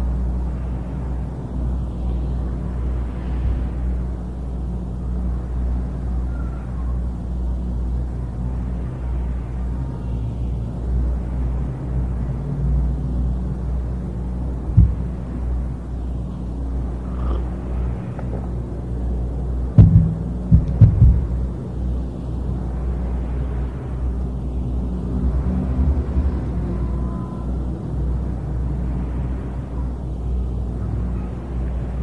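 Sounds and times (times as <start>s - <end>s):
low hum and rumble: 0.0s - 32.0s
sharp knocks: 14.7s - 15.1s, 19.8s - 21.4s.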